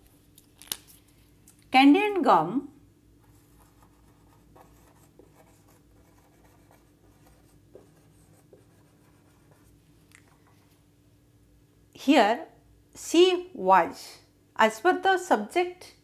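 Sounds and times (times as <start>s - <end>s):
marker pen scratching on whiteboard: 3.2s - 9.8s.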